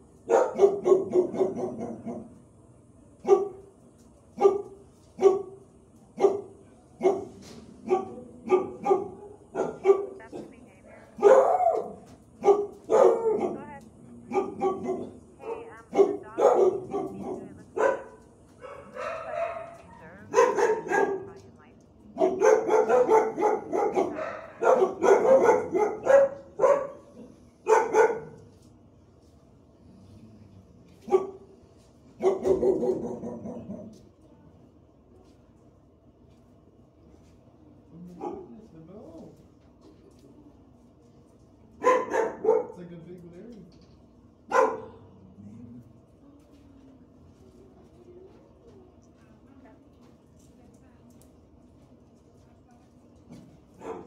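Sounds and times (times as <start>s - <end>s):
dogs barking: 0.2s - 2.4s, 3.2s - 3.7s, 4.3s - 21.5s, 22.1s - 28.5s, 31.0s - 34.1s, 38.1s - 38.6s, 41.8s - 42.8s, 44.4s - 45.2s, 53.7s - 54.0s.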